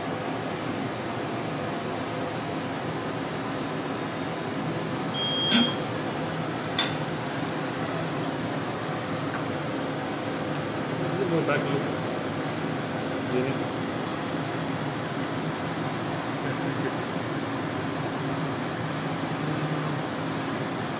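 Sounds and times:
ventilation fans humming: 0:00.0 - 0:20.9
short high beep: 0:05.2 - 0:05.8.

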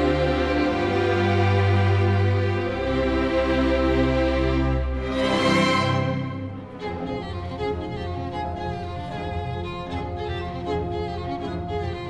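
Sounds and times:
string orchestra playing: 0:00.0 - 0:12.0.

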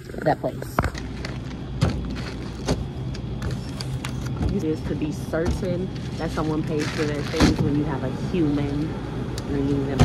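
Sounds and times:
steady low hum: 0:00.0 - 0:10.0
packaging rustling: 0:00.9 - 0:02.7, 0:06.0 - 0:07.6.

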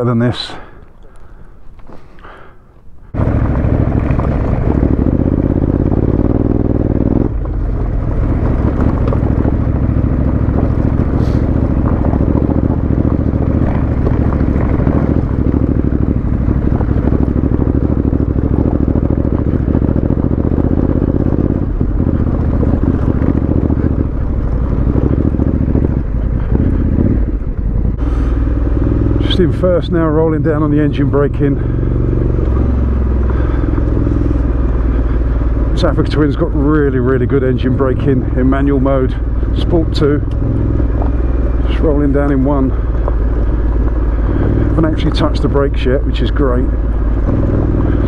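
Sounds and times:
motorcycle engine running: 0:02.3 - 0:48.0
wind noise: 0:03.3 - 0:28.7.

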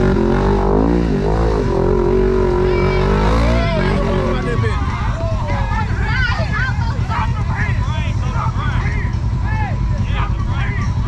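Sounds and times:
vehicle engines rumbling: 0:00.0 - 0:11.0
people shouting: 0:02.6 - 0:11.0.

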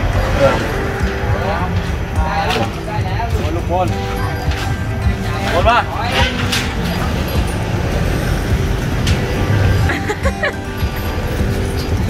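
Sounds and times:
motor vehicle passing: 0:00.0 - 0:12.0
road traffic rumble: 0:00.0 - 0:12.0.

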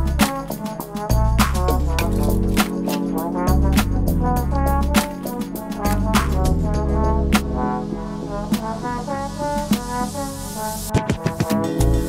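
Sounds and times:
house hip hop music with horns: 0:00.0 - 0:12.0.

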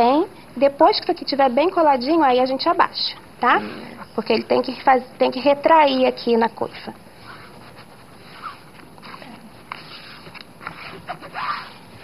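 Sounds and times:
paper rustling and rubbing: 0:07.2 - 0:12.0.

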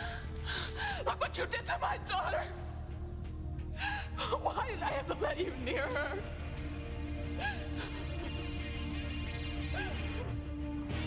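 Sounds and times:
dramatic music: 0:00.0 - 0:11.0
women gasping and crying out: 0:09.6 - 0:10.6.

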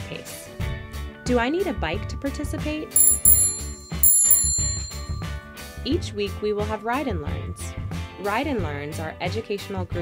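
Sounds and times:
bicycle bell ringing: 0:03.0 - 0:05.4.

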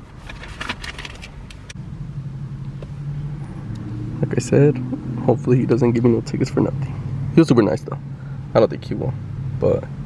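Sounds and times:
car engine idling: 0:00.6 - 0:10.0.

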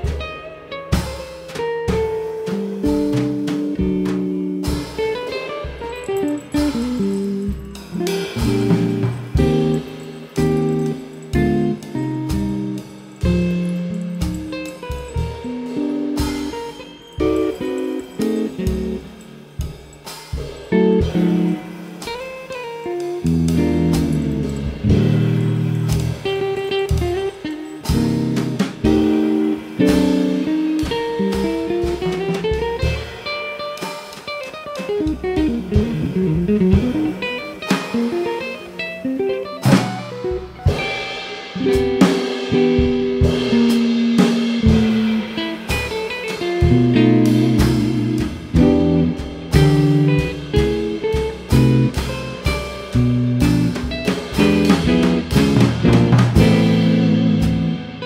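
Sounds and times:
drums and cymbals: 0:00.0 - 0:58.0
electric guitar playing jazz: 0:00.0 - 0:58.0.

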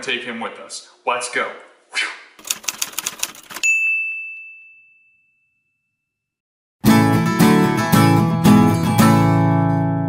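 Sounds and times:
typewriter key clacks: 0:02.4 - 0:03.7
typewriter bell ding: 0:02.5 - 0:06.0.

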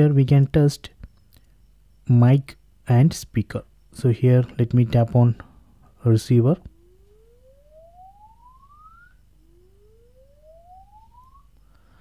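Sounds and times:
rising test tone sweep: 0:06.7 - 0:11.6.

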